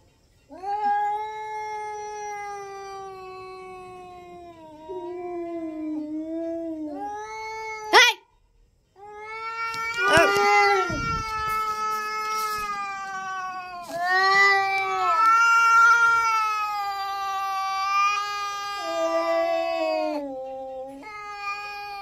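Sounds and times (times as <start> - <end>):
cats yowling: 0.5 - 8.2, 9.0 - 22.0
cat shrieking: 9.4 - 20.3.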